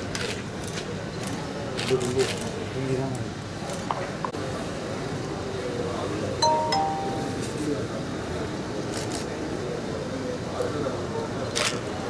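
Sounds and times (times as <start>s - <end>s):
murmur of voices: 0.6s - 12.0s
two-note chime: 6.4s - 7.8s.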